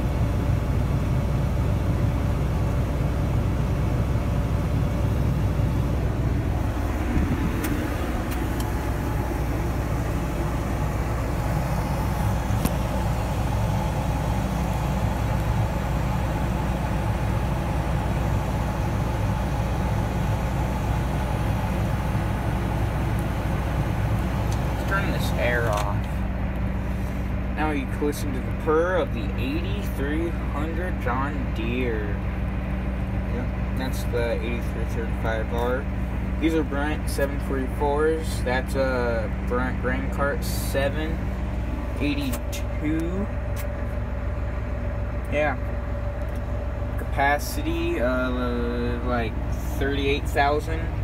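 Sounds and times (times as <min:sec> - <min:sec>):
tractor diesel engine running: 0:00.0 - 0:51.0.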